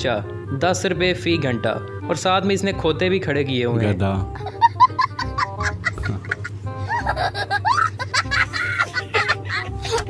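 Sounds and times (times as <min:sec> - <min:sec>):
young child laughing: 0:04.3 - 0:10.0.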